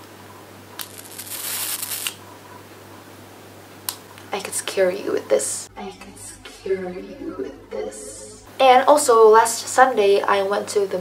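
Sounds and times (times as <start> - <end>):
electric arc crackling: 0.8 - 2.2.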